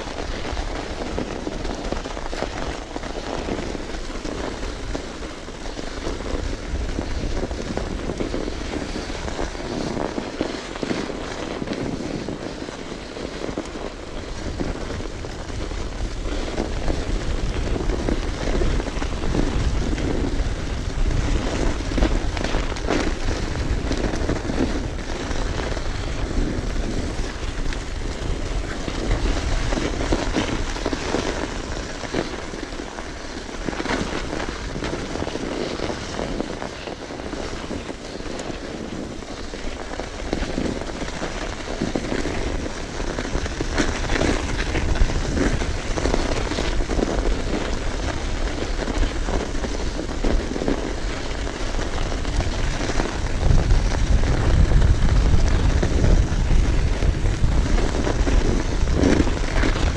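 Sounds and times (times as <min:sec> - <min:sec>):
bike rattling over bumps: 0:00.0 - 0:59.9
tyres rushing on snow: 0:00.0 - 0:59.9
wind rumble on microphone: 0:00.0 - 0:59.9.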